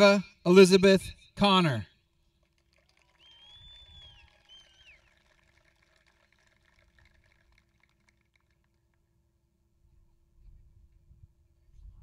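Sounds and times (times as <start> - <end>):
high cheering whistle: 3.1 - 5.1.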